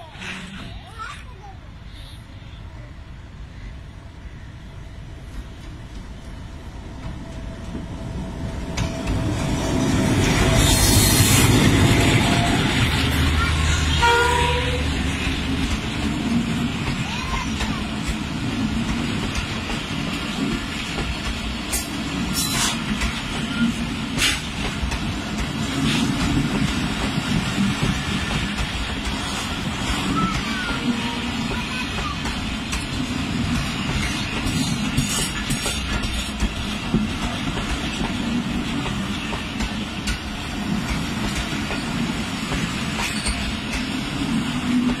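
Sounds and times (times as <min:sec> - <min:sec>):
train wheels rumbling on rail: 0:00.0 - 0:01.9, 0:03.9 - 0:45.0.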